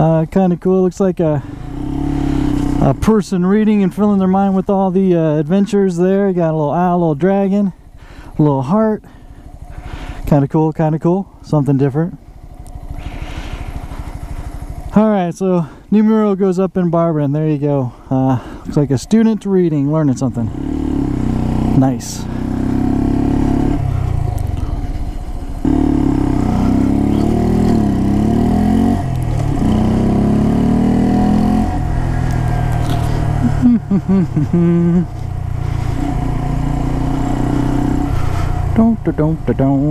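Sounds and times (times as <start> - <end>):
motorcycle engine pulling away: 1.4 - 4.6, 12.3 - 15.0, 20.4 - 39.9
motorcycle engine putter: 32.1 - 33.4.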